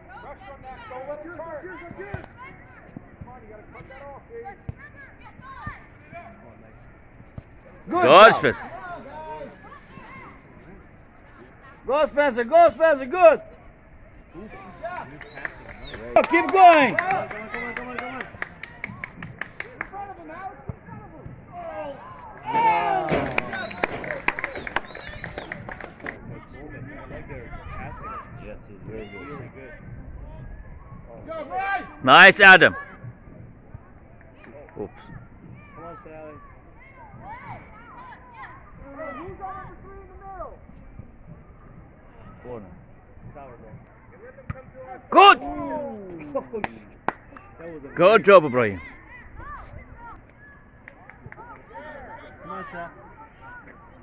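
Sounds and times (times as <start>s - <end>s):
faint shouts of players: 7.8s - 10.4s, 14.4s - 29.6s, 33.8s - 40.6s, 44.1s - 46.8s, 47.5s - 54.0s.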